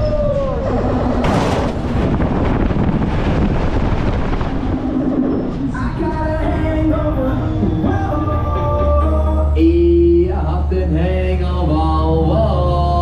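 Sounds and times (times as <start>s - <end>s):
wind rushing over microphone: 0.0s - 7.4s
fairground music: 6.8s - 13.0s.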